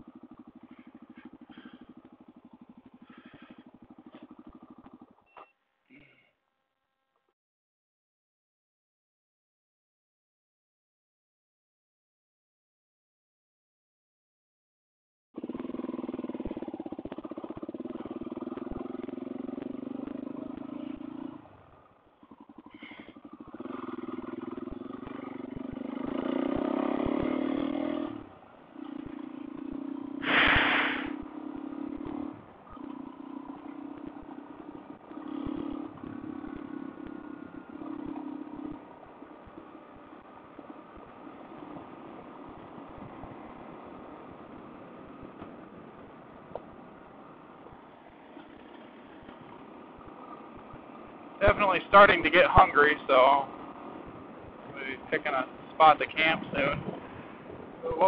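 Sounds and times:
motorcycle engine revving: 0.0s - 5.3s, 15.4s - 58.0s
loud rush of noise: 30.2s - 31.1s
gravel clattering under tyres: 48.1s - 53.6s.

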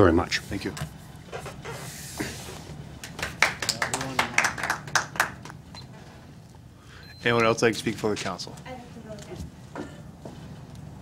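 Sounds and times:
people clapping: 3.0s - 5.9s.

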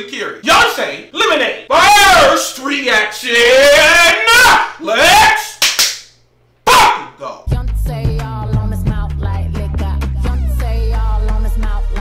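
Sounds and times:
man shouting: 0.4s - 5.6s, 6.6s - 7.5s
music with deep bass and beat: 7.5s - 12.0s.

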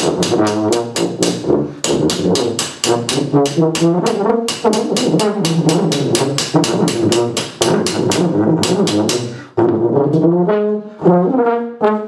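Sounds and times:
rapid hammer blows: 0.0s - 9.5s.

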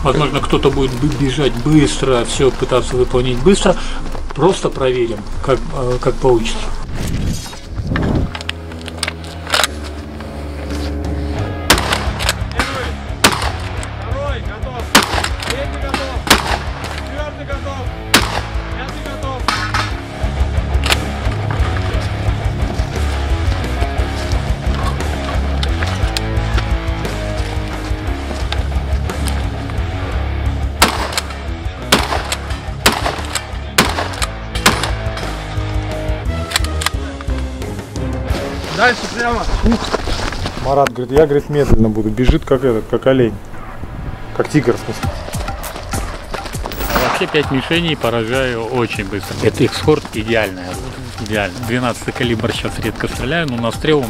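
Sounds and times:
shotgun shots: 11.7s - 13.7s, 14.9s - 17.0s, 18.1s - 18.6s, 30.8s - 35.0s, 46.7s - 47.8s.

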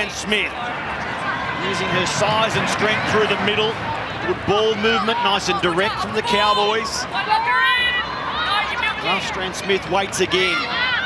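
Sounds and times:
crowd noise: 0.0s - 11.0s
commentator speaking: 1.6s - 7.1s.

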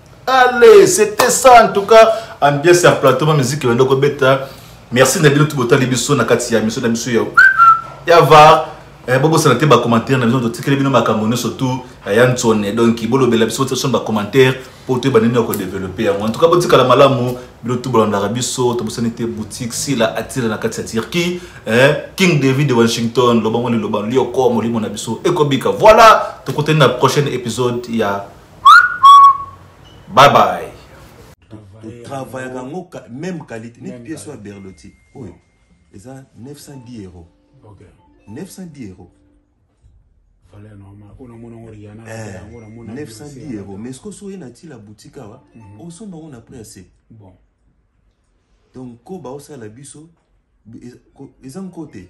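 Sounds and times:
whistled note: 7.4s - 8.0s, 28.6s - 30.0s
man speaking: 30.1s - 35.4s.

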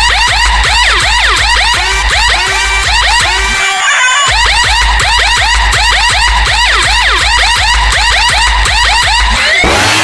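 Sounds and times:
dj remix music: 0.0s - 10.0s
police siren horn sample: 1.4s - 4.0s
heavy deep bass: 7.8s - 10.0s.

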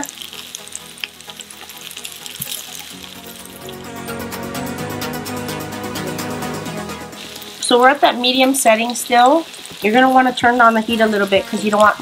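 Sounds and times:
fish and garlic sizzling in oil: 0.0s - 4.5s, 7.1s - 12.0s
background music: 0.0s - 12.0s.

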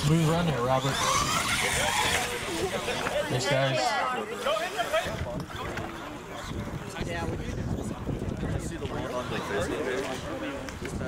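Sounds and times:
toy truck motor whining: 0.0s - 3.2s
people talking: 0.0s - 11.0s.

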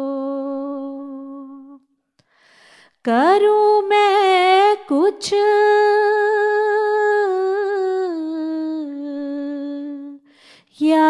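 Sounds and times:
solo person singing devotional song: 0.0s - 11.0s.

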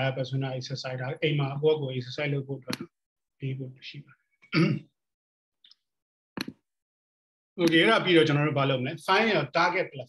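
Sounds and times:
man clearing his throat: 4.5s - 4.9s.

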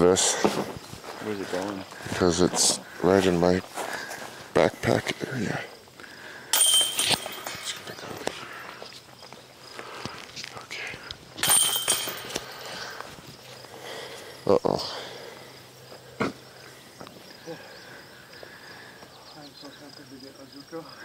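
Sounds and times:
metal chains rattling: 6.5s - 8.2s, 11.4s - 12.8s.

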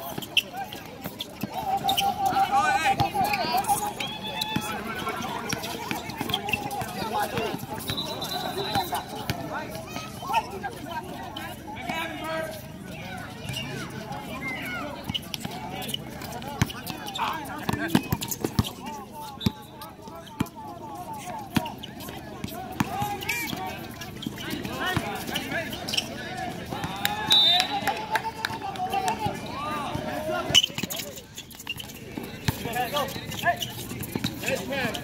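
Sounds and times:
people shouting and chattering: 0.0s - 35.0s
shoes on hard court: 0.0s - 35.0s
basketball bouncing on court: 17.6s - 18.8s.

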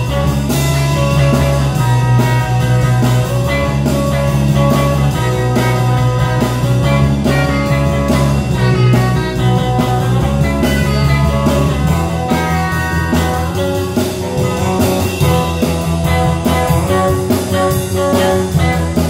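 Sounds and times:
blues-rock band jamming: 0.0s - 19.0s.

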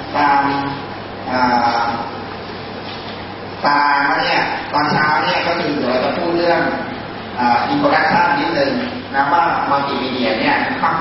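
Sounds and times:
man talking: 0.1s - 2.2s, 3.6s - 11.0s.

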